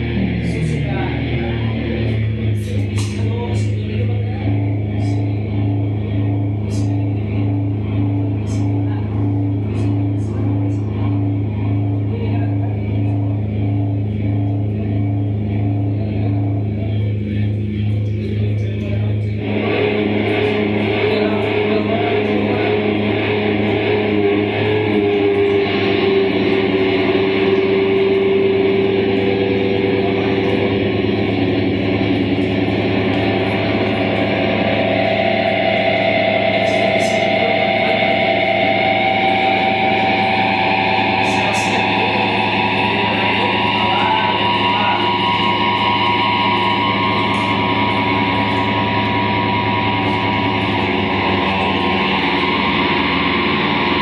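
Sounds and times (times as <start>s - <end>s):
experimental electronic music: 0.0s - 54.0s.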